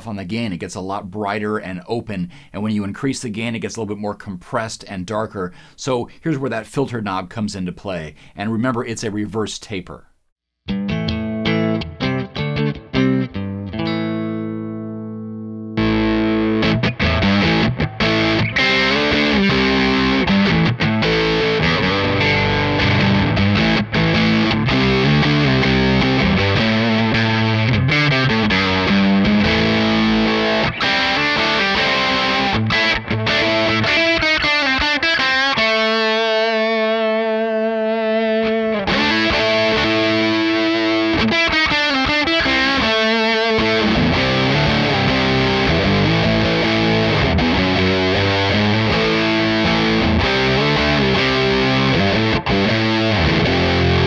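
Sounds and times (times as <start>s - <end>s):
distorted electric guitar riffing: 10.7s - 54.0s.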